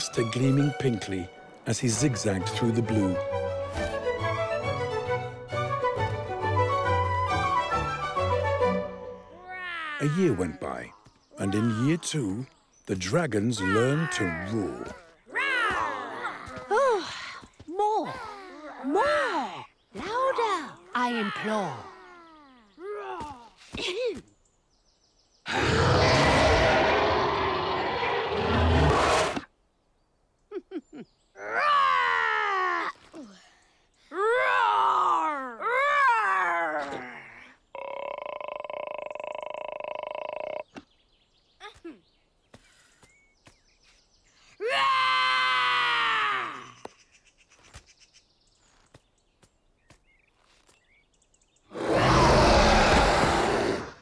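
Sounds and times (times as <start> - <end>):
cartoon dragons roaring: 25.5 - 29.4, 51.7 - 54.0.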